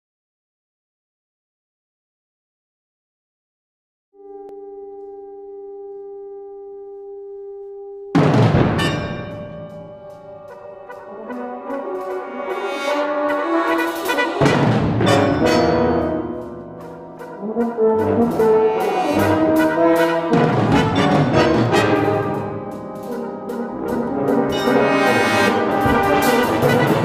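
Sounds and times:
brass band playing: 8.2s - 27.0s.

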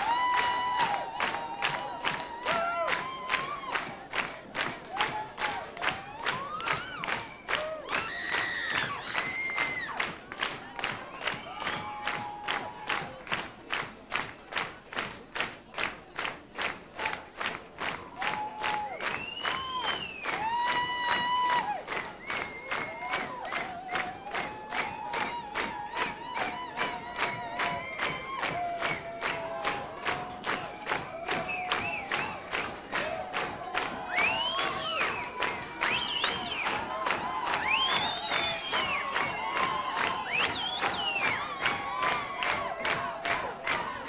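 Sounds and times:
crowd shouting: 0.0s - 3.9s
audience clapping in rhythm: 0.0s - 44.0s.

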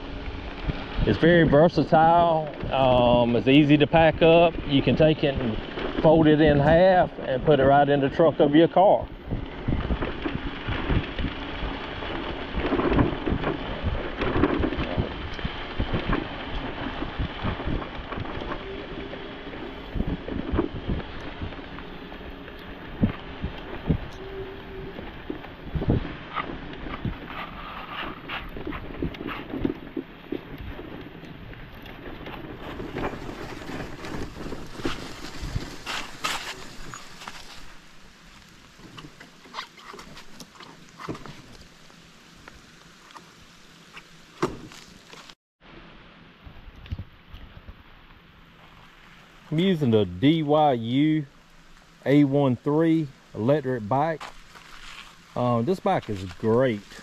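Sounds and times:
wind buffeting microphone: 0.0s - 37.5s
bike rattling over gravel: 0.0s - 45.4s, 46.2s - 57.0s.

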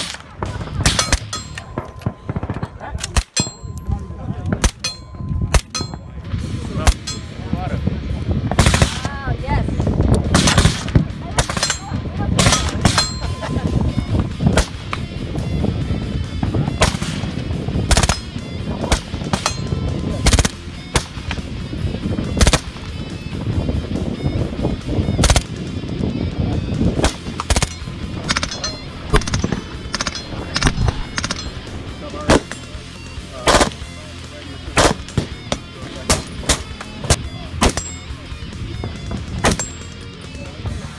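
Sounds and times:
rifle gunshots: 0.0s - 3.6s, 4.5s - 4.9s, 8.5s - 9.1s, 10.3s - 13.2s, 16.8s - 21.4s, 22.3s - 22.9s, 25.2s - 25.6s, 27.0s - 32.7s, 33.4s - 33.9s, 34.6s - 36.8s, 39.4s - 39.8s.

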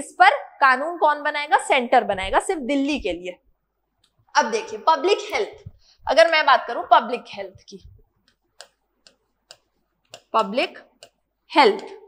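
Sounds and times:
stylus tapping on glass screen: 7.8s - 11.3s.

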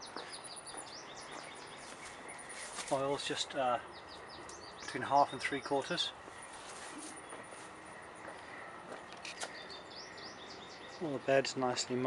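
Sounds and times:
high bird chirps: 0.0s - 8.6s.

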